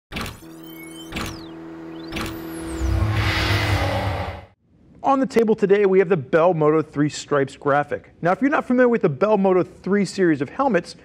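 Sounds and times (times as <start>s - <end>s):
held tone: 0.4s - 4.6s
sharp hits with whoosh: 2.0s - 4.6s
deep low rumble: 2.6s - 4.6s.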